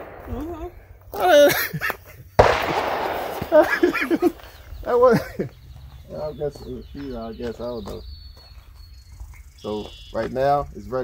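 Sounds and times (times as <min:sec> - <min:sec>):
shotgun shot: 0:00.0 - 0:00.9, 0:02.4 - 0:04.7
woman laughing: 0:00.2 - 0:02.4, 0:03.4 - 0:05.5.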